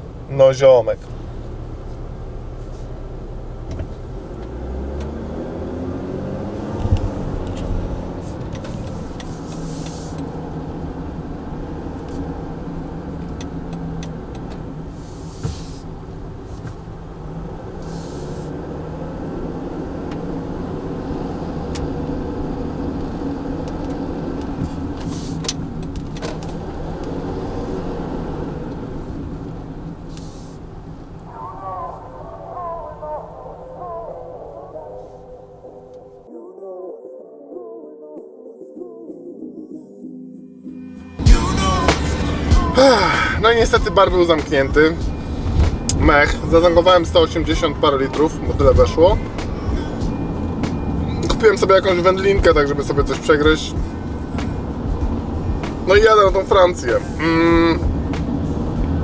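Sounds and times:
road noise: 0.0 - 36.3, 40.7 - 59.0
van engine driving: 0.0 - 36.3, 41.0 - 59.0.

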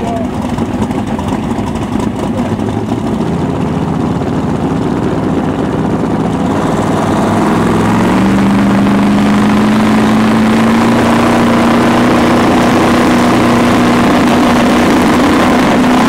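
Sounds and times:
car engine idling and revving: 0.0 - 16.0.

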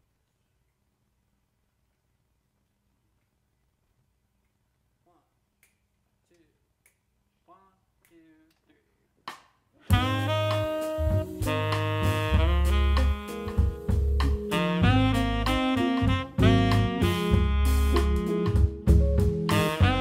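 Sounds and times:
finger snaps: 5.6 - 7.1
jazz band playing: 9.9 - 20.0.

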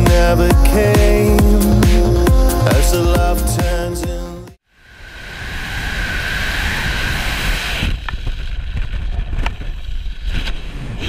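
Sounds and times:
wind rushing over microphone: 4.8 - 11.0.

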